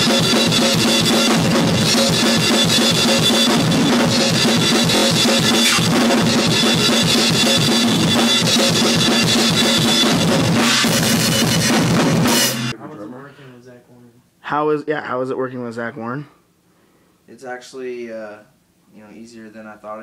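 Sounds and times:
fast metal drumming: 0:00.0 - 0:12.8.

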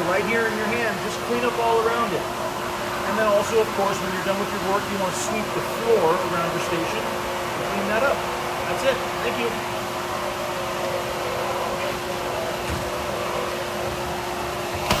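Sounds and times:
constant machine hum: 0:00.0 - 0:15.0.

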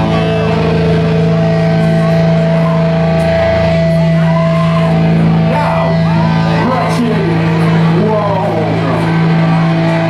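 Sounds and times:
amplified drone through speakers: 0:00.0 - 0:10.0.

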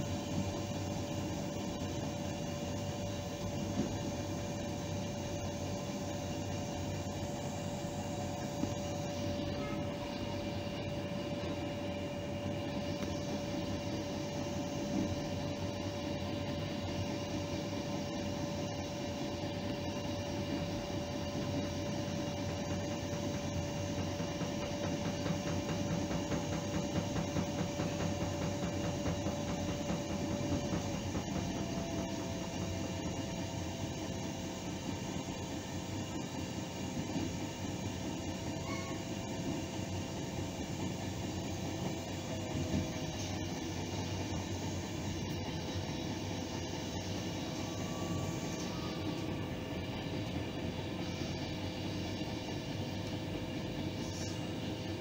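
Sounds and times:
train whine: 0:00.0 - 0:55.0
train rumble: 0:20.6 - 0:34.2.

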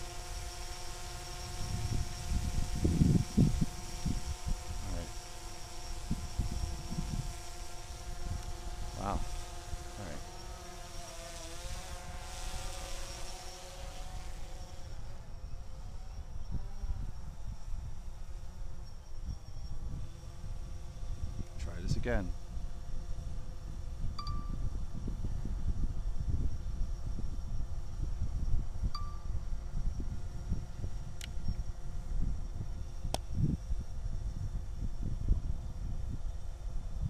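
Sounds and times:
drone propellers buzzing: 0:00.0 - 0:37.0
wind rumble on microphone: 0:00.0 - 0:37.0.

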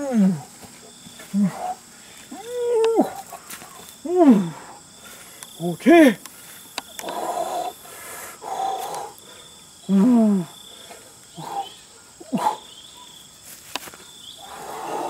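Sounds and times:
insect drone: 0:00.0 - 0:15.0
man grunting and exclaiming: 0:05.6 - 0:06.2.

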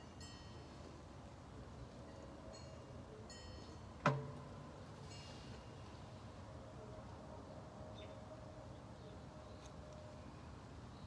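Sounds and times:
faint steady tone: 0:00.0 - 0:11.0.

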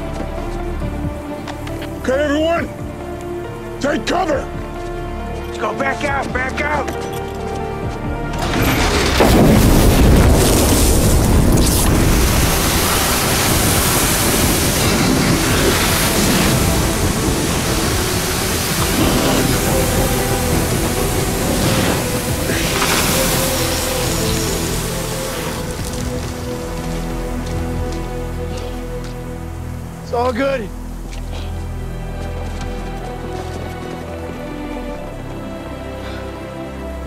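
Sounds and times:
dramatic music: 0:00.0 - 0:37.0
rushing rumbling roar of fire: 0:08.4 - 0:33.5
fireball explosion: 0:08.5 - 0:26.6.

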